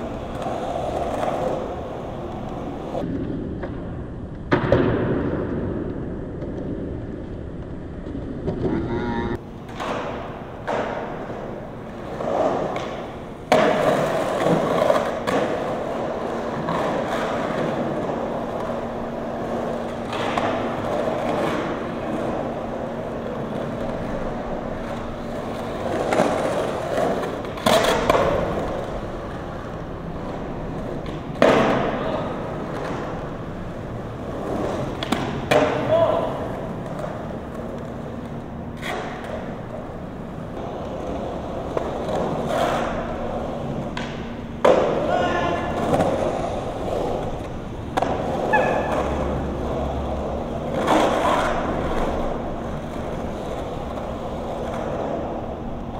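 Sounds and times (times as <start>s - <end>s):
skateboard clacking on concrete: 0.0s - 5.0s, 9.6s - 55.9s
skateboard wheels rolling on concrete: 0.0s - 55.9s.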